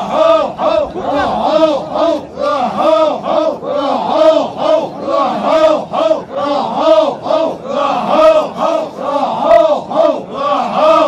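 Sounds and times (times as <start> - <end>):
men chanting in unison: 0.0 - 11.0.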